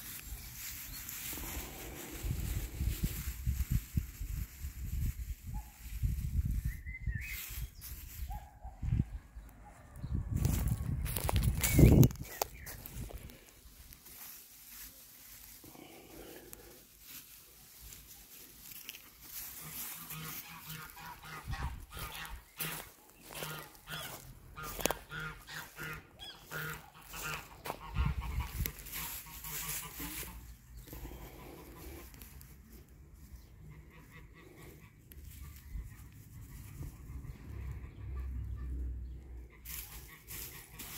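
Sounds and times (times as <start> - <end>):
hand rustling dry straw: 0.0 - 9.2, 10.2 - 40.9
geese honking: 18.7 - 32.2, 33.4 - 40.9.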